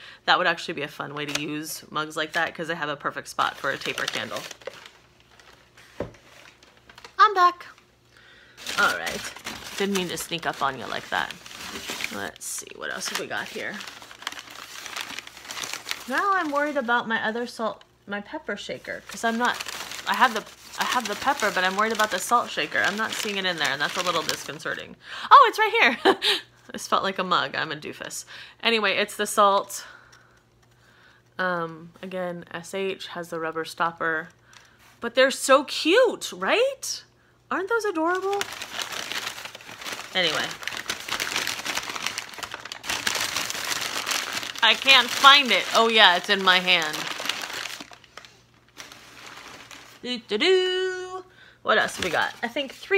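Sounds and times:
packing paper crumpling: 3.3s - 17.3s, 18.8s - 24.8s, 38.0s - 50.2s, 51.8s - 52.9s.

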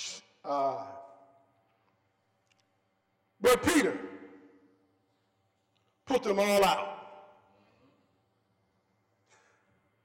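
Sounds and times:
man's voice echoing: 3.3s - 4.8s, 5.9s - 7.8s.

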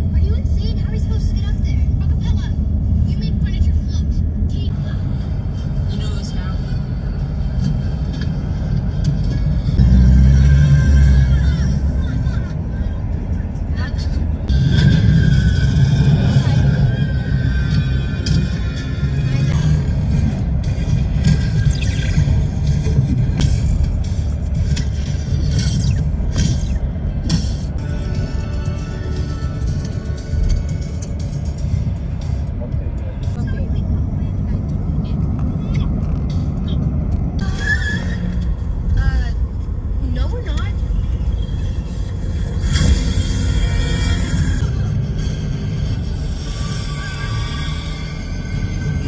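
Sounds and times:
road rumble inside van: 0.0s - 49.0s
music playing: 3.1s - 49.0s.

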